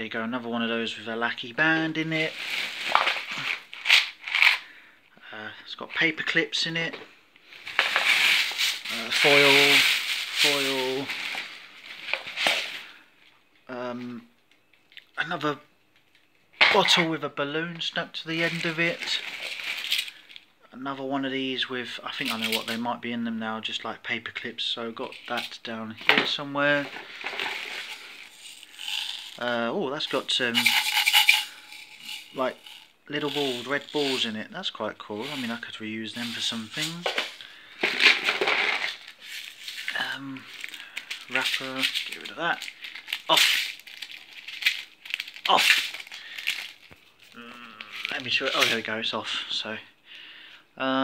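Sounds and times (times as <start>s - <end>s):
plastic bag rustling: 1.9s - 4.6s, 7.5s - 13.0s, 18.3s - 20.4s, 25.0s - 34.4s, 35.0s - 49.0s
paper clips rattling in pot: 7.8s - 11.5s, 18.4s - 20.4s, 26.8s - 29.5s, 30.1s - 34.3s, 38.0s - 48.9s.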